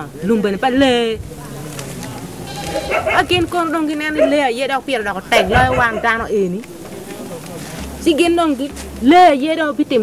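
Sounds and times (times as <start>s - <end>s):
woman speaking emotionally: 3.1s - 6.5s.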